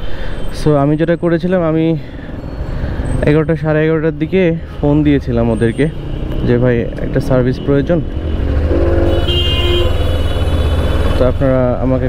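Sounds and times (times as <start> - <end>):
vehicle horn: 7.5 - 11.2.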